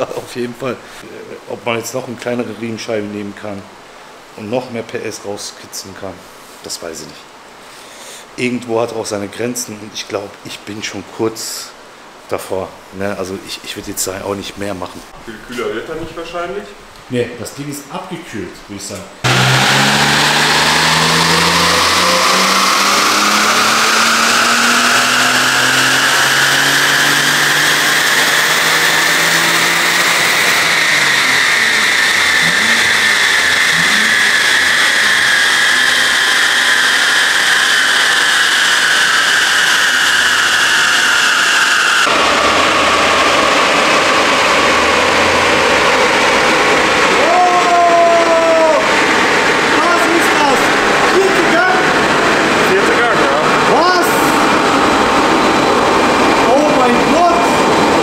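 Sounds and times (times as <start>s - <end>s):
car engine at full throttle: 19.2s - 58.0s.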